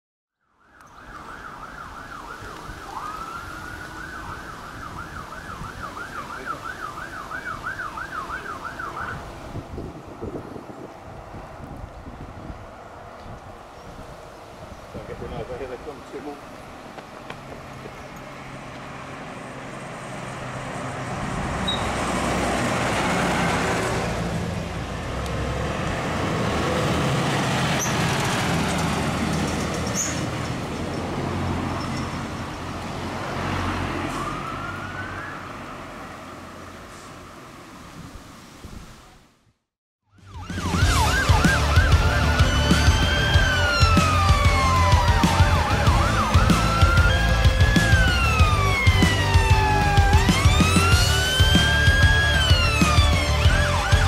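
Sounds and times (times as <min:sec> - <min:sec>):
fire engine siren: 0:00.3 - 0:12.5, 0:18.4 - 0:29.3, 0:33.0 - 0:37.0, 0:40.0 - 0:54.0
wind on microphone: 0:08.9 - 0:15.6, 0:37.8 - 0:39.3.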